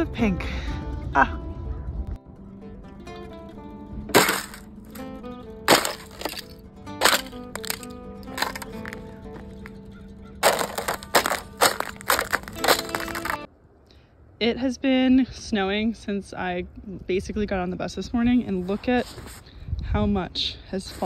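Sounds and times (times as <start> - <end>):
background music sustained notes: 0.0 - 13.5
ice cracking underfoot: 4.2 - 5.1, 5.7 - 9.7, 10.4 - 13.5.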